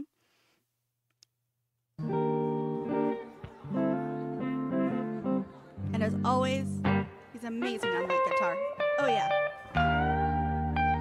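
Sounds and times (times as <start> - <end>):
electric guitar strumming chords: 2.0 - 11.0.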